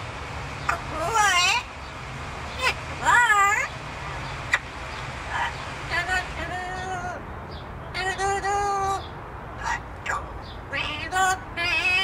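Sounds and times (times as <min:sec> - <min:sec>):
parrot wavering call: 0:00.7 - 0:01.7.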